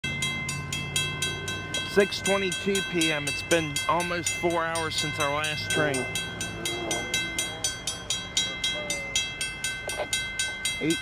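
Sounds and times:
crossing warning bell ringing: 0.0 - 11.0
low steady drone: 0.0 - 11.0.

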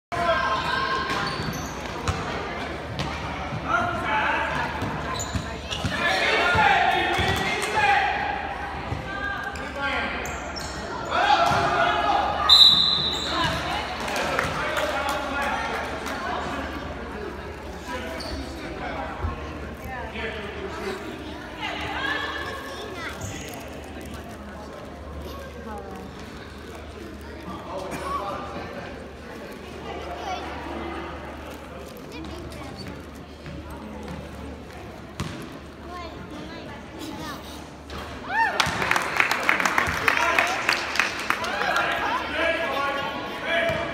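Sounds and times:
spectators talking: 0.1 - 43.9
referee's whistle: 12.4 - 13.6.

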